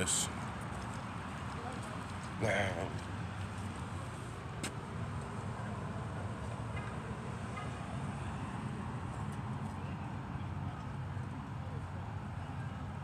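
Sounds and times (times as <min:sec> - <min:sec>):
road traffic hum: 0:00.0 - 0:13.0.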